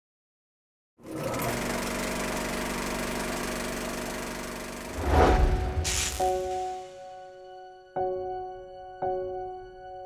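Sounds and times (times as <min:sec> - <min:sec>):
low hum: 0:04.9 - 0:07.0.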